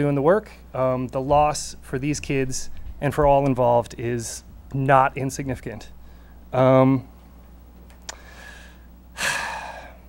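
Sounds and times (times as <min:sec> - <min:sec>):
man breathing: 0:06.0 - 0:06.5, 0:08.1 - 0:10.0
lip click: 0:07.9 - 0:08.2.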